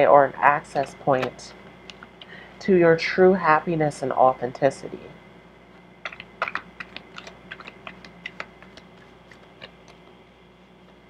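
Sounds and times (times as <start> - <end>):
cards being shuffled: 6.0 - 11.0.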